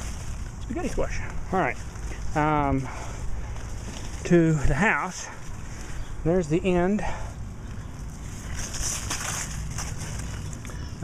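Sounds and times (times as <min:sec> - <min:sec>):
leaves rustling: 0:00.0 - 0:11.0.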